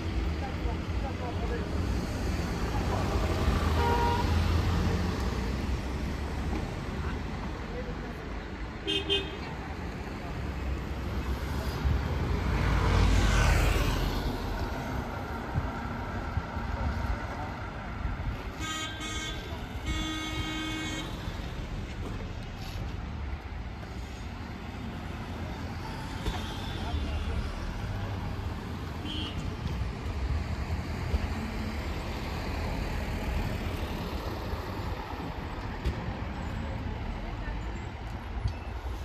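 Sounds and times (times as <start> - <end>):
street traffic rumbling: 0.0 - 39.0
vehicle horn: 3.8 - 4.4, 18.6 - 21.2, 29.0 - 29.4.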